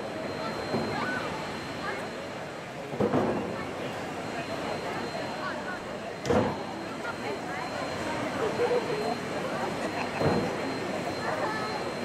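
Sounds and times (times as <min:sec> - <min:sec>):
passers-by talking: 0:00.0 - 0:12.0.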